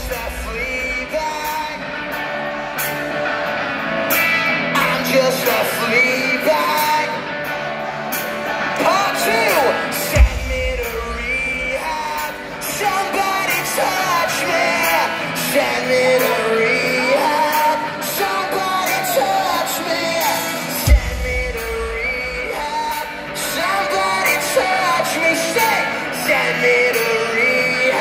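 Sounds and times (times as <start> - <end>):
live rock band with singing: 0.0 - 28.0.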